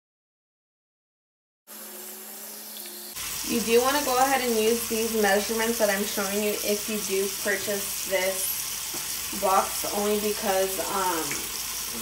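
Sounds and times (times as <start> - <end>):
faucet running into sink: 2.0 - 12.0.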